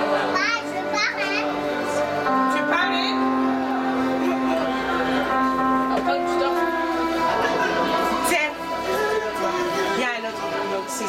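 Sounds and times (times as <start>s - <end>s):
background music of held chords: 0.0s - 11.0s
crowd murmuring: 0.0s - 11.0s.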